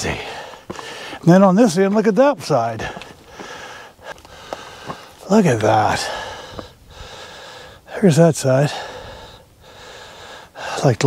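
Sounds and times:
man breathing close to microphone: 0:00.1 - 0:01.2, 0:02.8 - 0:05.2, 0:06.0 - 0:07.9, 0:08.6 - 0:11.0.

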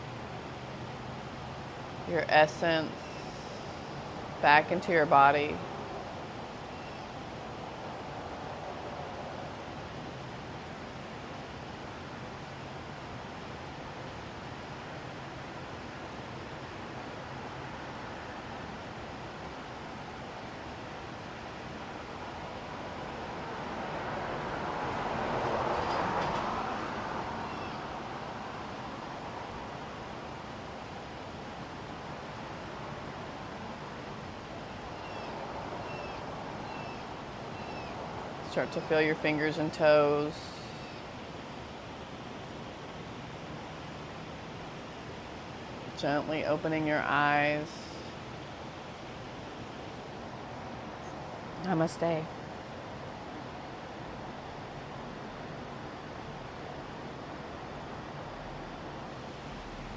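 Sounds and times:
outdoor background noise: 0:00.0 - 0:59.9
vehicle passing: 0:22.4 - 0:29.8.

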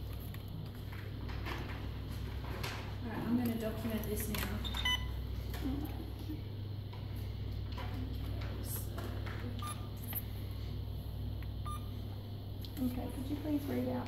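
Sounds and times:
steady low hum: 0:00.0 - 0:14.0
short electronic beeps: 0:09.6 - 0:09.9, 0:11.6 - 0:11.9.

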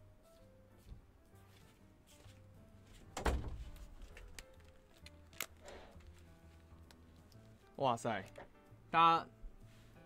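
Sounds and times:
faint background music: 0:00.0 - 0:10.0
wooden door thunking shut: 0:03.1 - 0:03.8.

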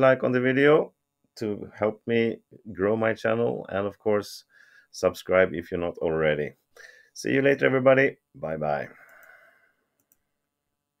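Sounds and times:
faint clicks: 0:09.0 - 0:09.4, 0:10.0 - 0:10.3.

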